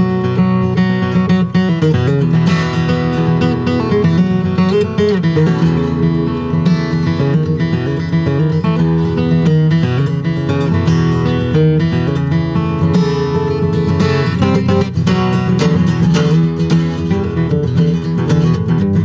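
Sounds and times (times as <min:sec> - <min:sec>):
acoustic guitar picking: 0:00.0 - 0:19.0.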